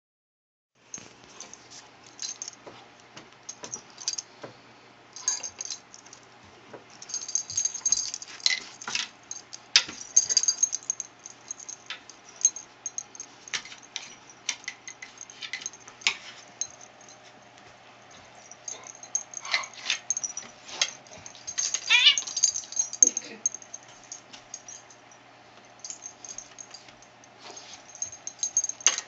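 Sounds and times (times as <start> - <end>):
pet collar jingling: 0.9 - 4.4, 5.2 - 6.3, 6.9 - 29.0
soft dog whine: 21.2 - 22.6.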